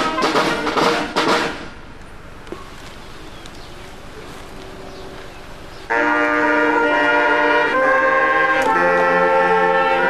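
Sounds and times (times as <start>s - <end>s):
brass band chords: 0.0s - 1.9s, 5.9s - 10.0s.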